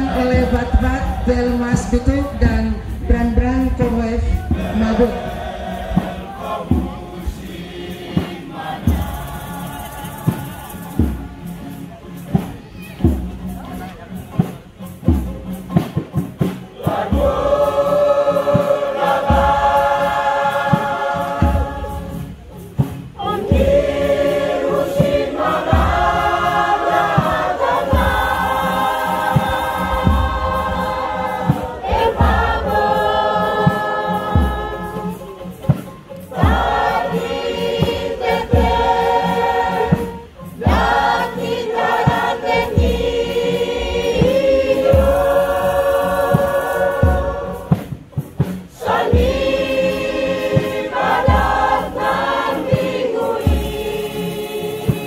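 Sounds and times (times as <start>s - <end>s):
women's choir singing: 0.0s - 11.8s, 16.7s - 55.0s.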